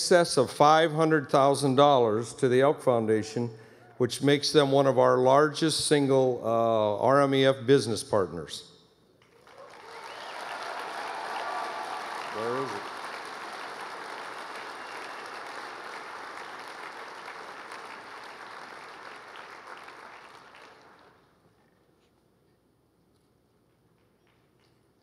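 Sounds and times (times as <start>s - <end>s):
audience applauding: 9.3s - 21.3s.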